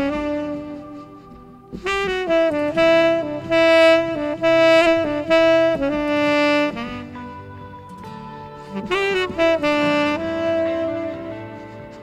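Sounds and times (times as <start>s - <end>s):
saxophone slow melody: 0.0s - 12.0s.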